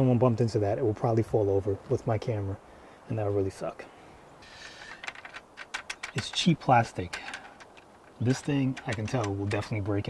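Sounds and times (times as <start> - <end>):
brief rustle: 4.4 - 6.5, 7.1 - 9.7
plastic crank handle clicking: 4.8 - 6.5, 7.1 - 9.7.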